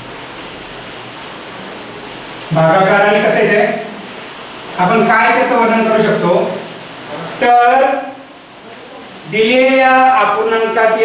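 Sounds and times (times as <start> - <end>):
steady background hiss: 0.0 - 11.0
person speaking: 2.5 - 4.1, 4.8 - 11.0.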